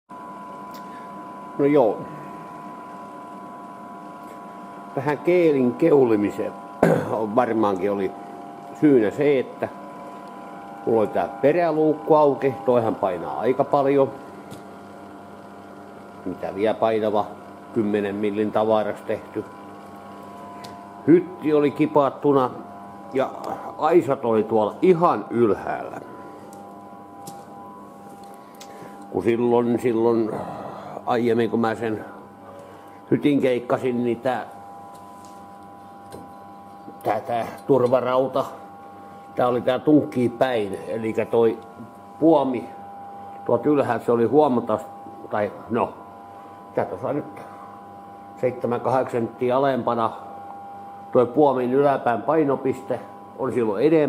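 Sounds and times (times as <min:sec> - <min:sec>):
mechanical hum with high whine: 0:00.1 - 0:54.0.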